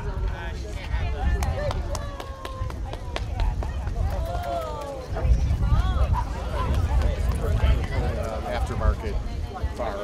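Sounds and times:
people chatting: 0.0 - 10.0.

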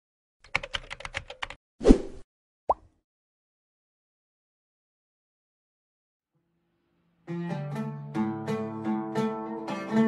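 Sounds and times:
keyboard typing clicks: 0.5 - 1.6.

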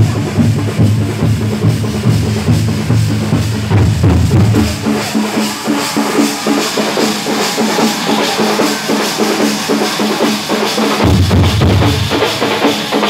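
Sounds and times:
drum band playing: 0.0 - 13.0.

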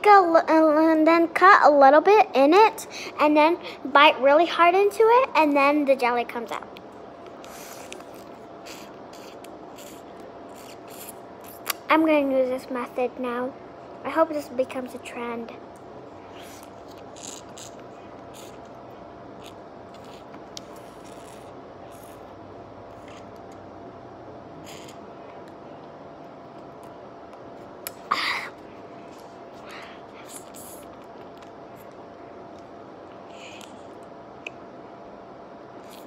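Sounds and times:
low room hum: 0.0 - 36.0
child sucking at plastic pouch: 7.4 - 11.8, 16.3 - 18.8, 19.4 - 22.3, 22.9 - 23.5, 24.6 - 25.1, 29.1 - 31.9, 33.3 - 34.0, 35.8 - 36.0.

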